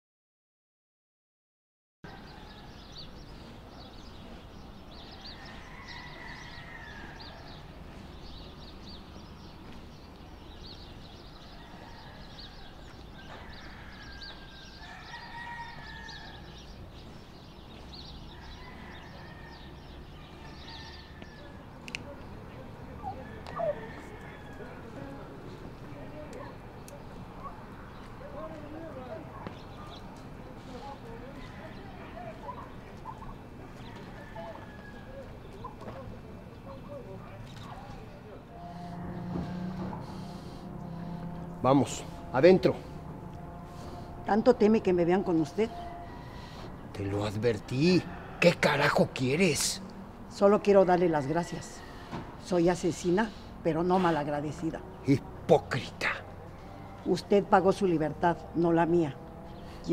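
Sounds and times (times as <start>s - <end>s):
birds chirping: 2.0s - 59.9s
long drawn-out bird calls: 38.3s - 47.4s.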